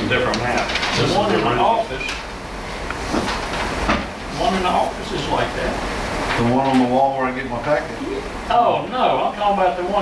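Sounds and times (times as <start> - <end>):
low room rumble: 0.0 - 10.0
paper rustling: 0.4 - 1.5.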